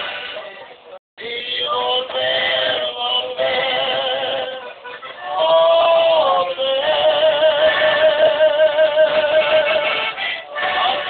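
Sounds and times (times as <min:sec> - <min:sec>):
men singing: 0:01.2 - 0:11.0.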